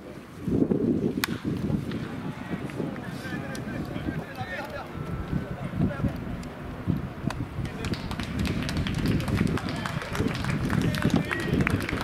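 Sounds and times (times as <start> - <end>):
people talking: 2.0 - 6.4, 7.3 - 12.0.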